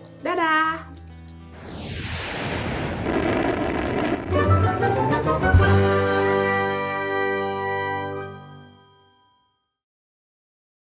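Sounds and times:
bell-like chime chord: 8.1s - 9.8s.

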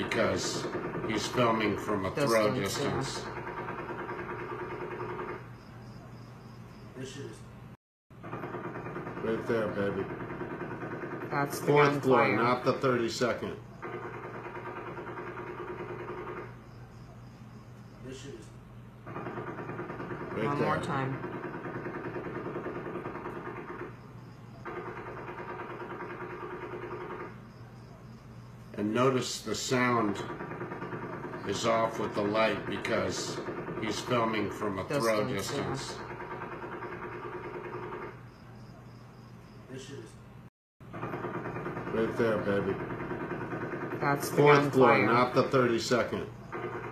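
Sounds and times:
distant rapid gunfire: 0.0s - 5.5s, 8.2s - 16.7s, 19.0s - 27.4s, 28.8s - 38.2s, 40.9s - 46.9s.

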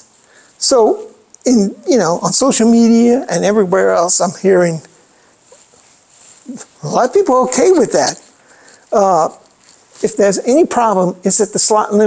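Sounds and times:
man talking: 0.6s - 5.0s, 6.4s - 12.0s.

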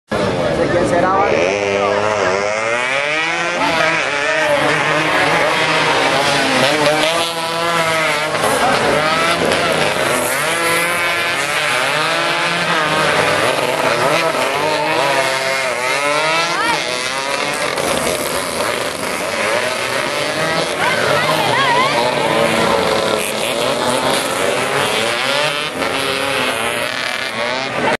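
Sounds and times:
racing motorcycles revving past: 0.2s - 28.0s.

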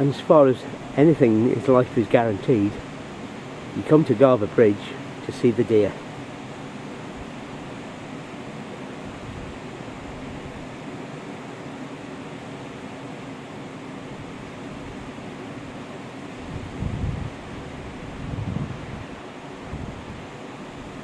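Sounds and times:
steady rushing hiss: 0.0s - 21.0s
wind buffeting microphone: 16.4s - 21.0s.

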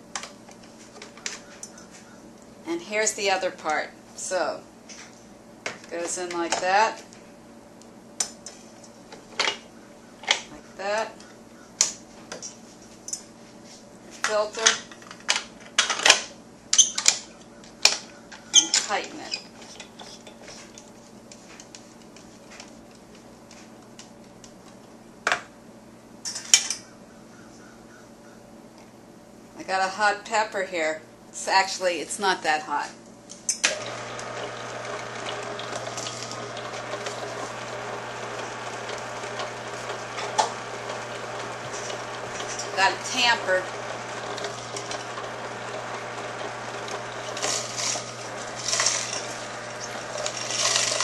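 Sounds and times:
gears crushing pepper crackling: 33.6s - 51.0s
juicer motor humming: 33.6s - 51.0s.

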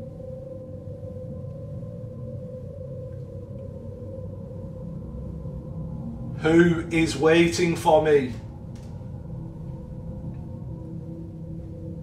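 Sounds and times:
steady droning tone: 0.0s - 12.0s.

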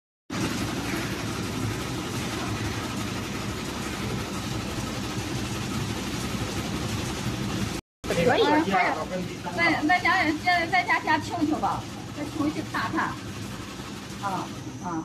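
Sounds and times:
meat slicing machine running: 0.3s - 15.0s.

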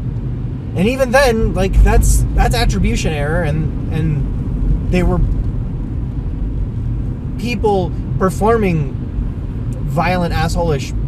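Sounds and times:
car interior road rumble: 0.0s - 11.0s.

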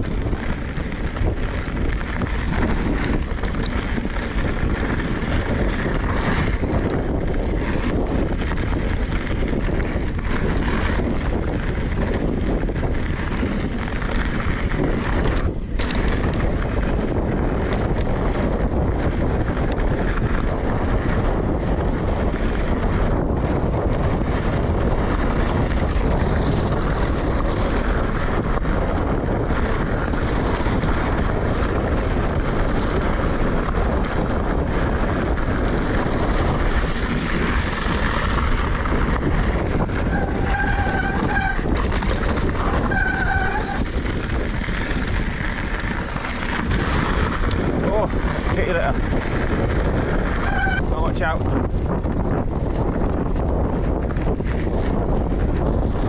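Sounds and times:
bike tyres rolling on gravel: 0.0s - 56.0s
wind buffeting microphone: 0.0s - 56.0s.

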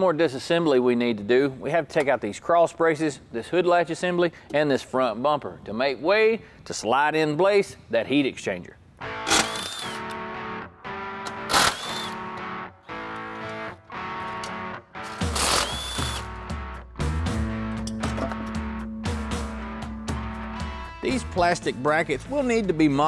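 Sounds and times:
guitar music: 9.0s - 22.6s
cordless drill running: 9.2s - 10.2s, 11.5s - 12.2s, 15.1s - 16.3s.

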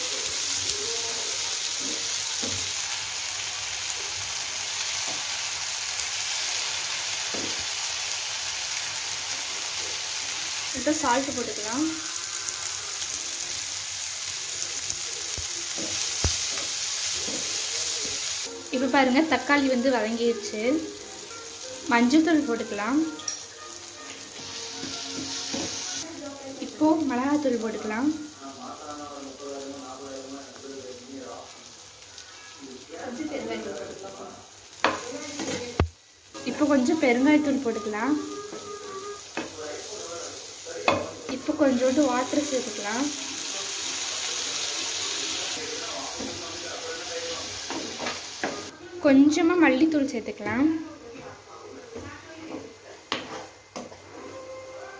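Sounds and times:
vegetables sizzling in oil: 0.0s - 51.2s, 51.9s - 54.9s.

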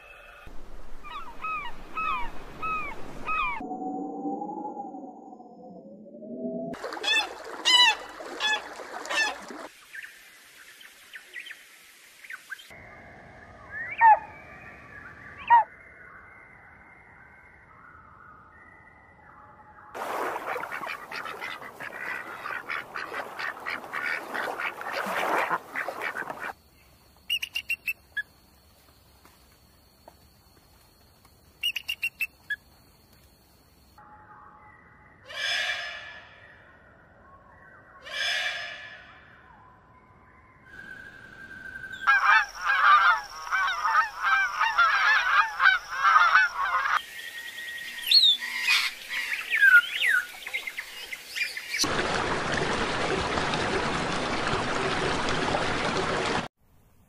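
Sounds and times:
bird calls: 0.0s - 3.6s, 13.6s - 16.3s, 20.1s - 26.6s, 27.3s - 28.3s, 31.6s - 32.6s, 40.7s - 51.9s
bird chirps: 12.2s - 19.6s, 27.3s - 28.3s, 31.6s - 32.6s, 39.6s - 51.8s
duck calls: 20.3s - 26.6s, 42.1s - 47.0s.

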